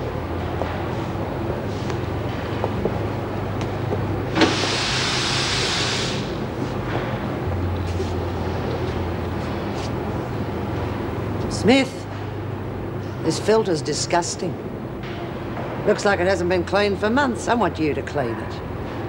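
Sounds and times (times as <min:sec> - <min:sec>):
laundry machinery humming: 0:00.0 - 0:17.8
burst of hiss: 0:04.4 - 0:06.4.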